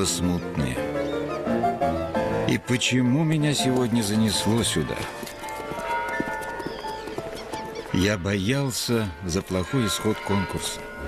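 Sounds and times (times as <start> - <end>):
film soundtrack music: 0.0 - 11.0.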